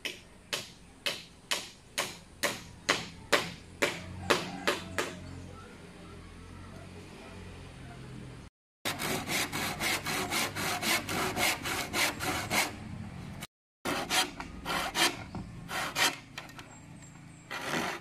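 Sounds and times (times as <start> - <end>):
hand saw cutting bamboo: 8.9 - 12.8, 13.8 - 16.3, 17.5 - 18.0.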